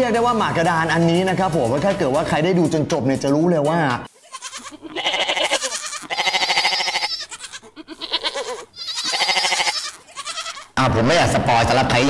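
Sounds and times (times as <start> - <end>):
goat bleating: 4.1 - 10.8.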